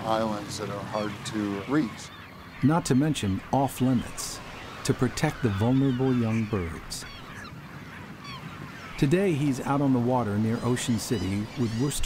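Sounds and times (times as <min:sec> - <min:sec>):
waterbirds calling: 0:00.0 - 0:12.0.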